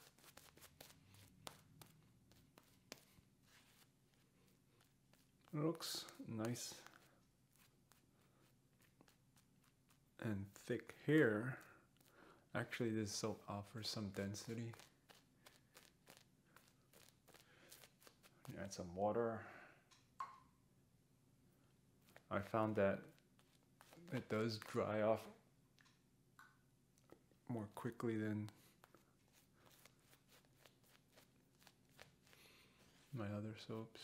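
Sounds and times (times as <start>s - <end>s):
shaving brush crackling in lather: 0.0s - 18.8s, 22.0s - 25.3s, 27.8s - 33.2s.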